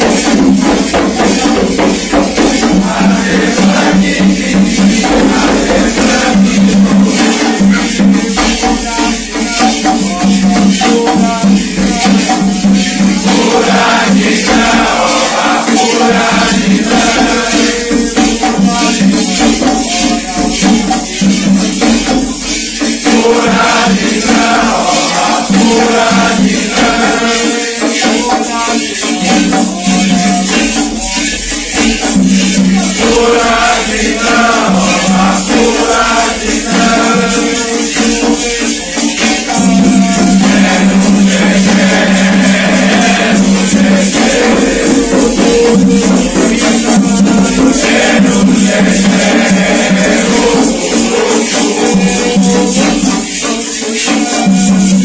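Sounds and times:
group chanting in unison: 0.0 - 55.0
hand rattle shaking: 0.0 - 55.0.

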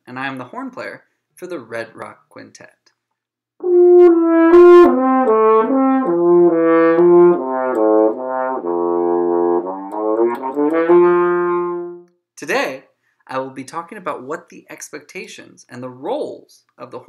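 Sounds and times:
french horn playing: 3.6 - 12.1.

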